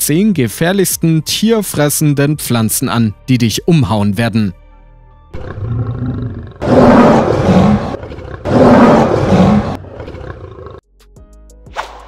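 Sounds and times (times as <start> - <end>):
lion roaring: 5.4 - 10.8.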